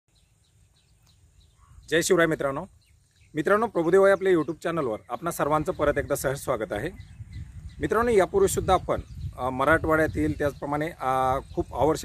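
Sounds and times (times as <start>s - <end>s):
bird chirps: 0.1s - 12.0s.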